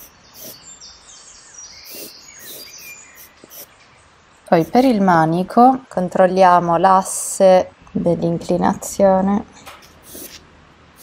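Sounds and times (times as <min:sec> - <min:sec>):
charcoal pencil scratching: 0:00.0 - 0:00.6, 0:01.9 - 0:03.7, 0:09.9 - 0:10.4
faint high chirping tones: 0:00.0 - 0:05.2.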